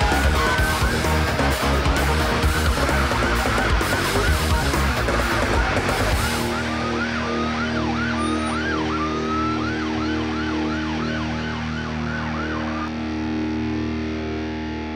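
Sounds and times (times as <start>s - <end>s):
police siren wailing: 0.0s - 14.9s.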